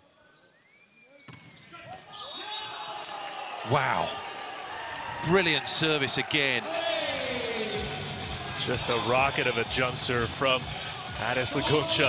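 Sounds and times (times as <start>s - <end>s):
faint whistle: 0.2s - 3.2s.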